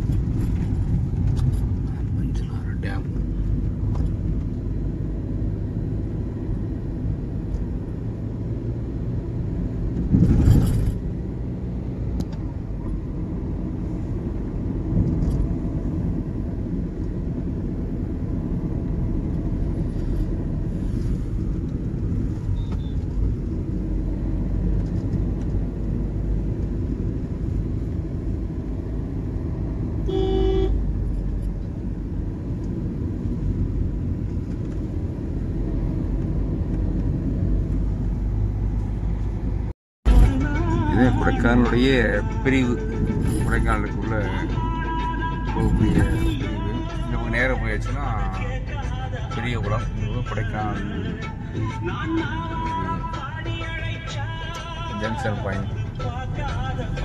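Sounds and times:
car road rumble from inside: 0:00.0 - 0:57.0
vehicle horn: 0:30.0 - 0:30.8, 0:45.9 - 0:47.1.

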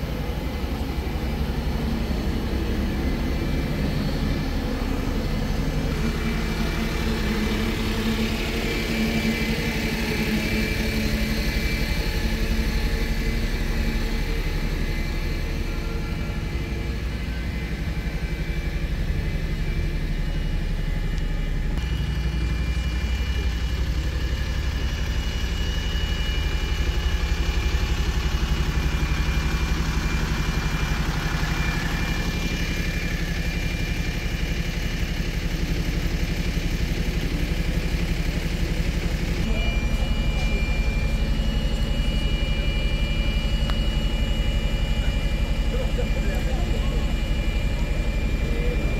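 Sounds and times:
bus engines idling: 0:00.0 - 0:48.9.

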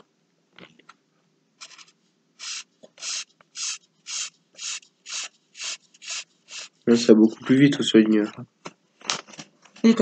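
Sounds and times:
felt marker scrubbing on paper: 0:02.4 - 0:06.8.

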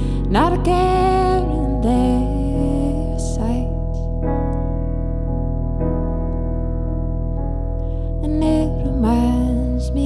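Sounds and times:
woman singing: 0:00.0 - 0:04.1, 0:08.2 - 0:10.0
electric piano chords: 0:00.0 - 0:10.0.

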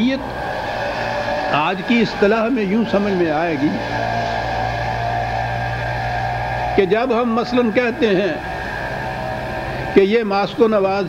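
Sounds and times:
man speaking: 0:01.5 - 0:03.9, 0:06.8 - 0:08.4, 0:10.0 - 0:11.0.

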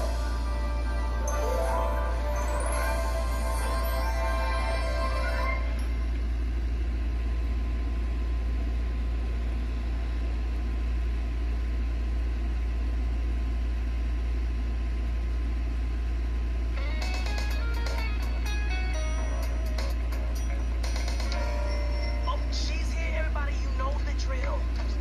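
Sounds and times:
music through small speaker: 0:00.0 - 0:06.0, 0:16.8 - 0:25.0
steady low hum: 0:00.0 - 0:25.0.

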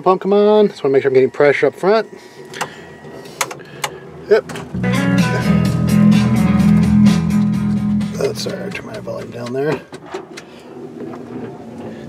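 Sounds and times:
electric fuel pump humming: 0:00.9 - 0:09.3.

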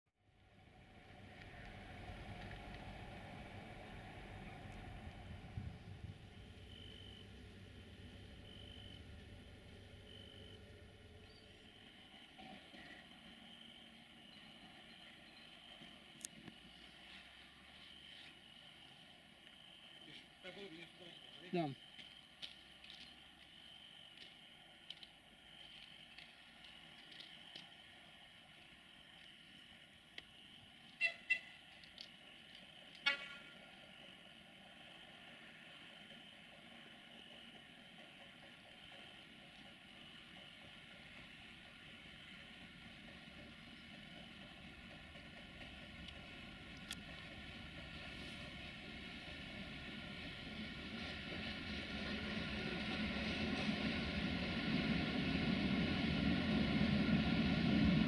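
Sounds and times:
low faint rumble: 0:00.4 - 0:12.3
freight train rumble: 0:00.4 - 0:58.0
insect chirring: 0:06.2 - 0:52.9
locomotive horn blasts: 0:31.0 - 0:31.6, 0:33.0 - 0:33.6.

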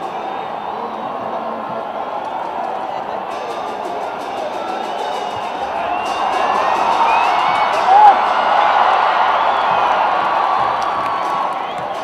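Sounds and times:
stadium crowd cheering and whistling: 0:00.0 - 0:12.0
loud pitched shout or horn: 0:03.3 - 0:08.4.

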